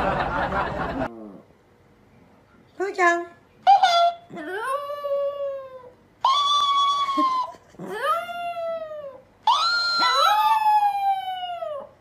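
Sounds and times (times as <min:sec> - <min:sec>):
dog howling: 0:03.8 - 0:12.0.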